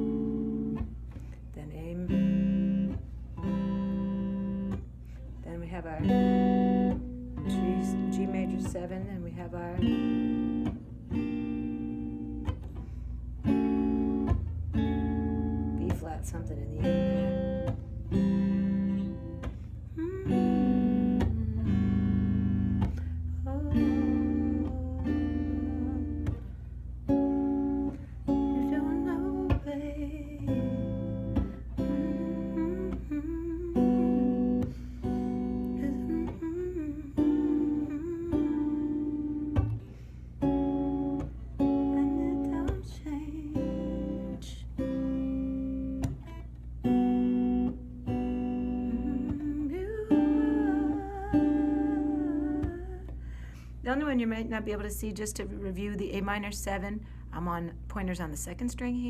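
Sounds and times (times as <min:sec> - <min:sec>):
electric guitar chords: 0:00.0 - 0:57.9
person singing softly: 0:05.4 - 0:10.8, 0:18.9 - 0:26.5, 0:27.9 - 0:39.8, 0:41.2 - 0:46.2, 0:48.1 - 0:53.2.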